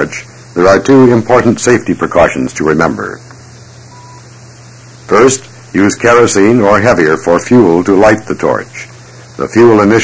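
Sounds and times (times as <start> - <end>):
background hiss: 0.0 - 10.0
faint beep: 3.9 - 4.4.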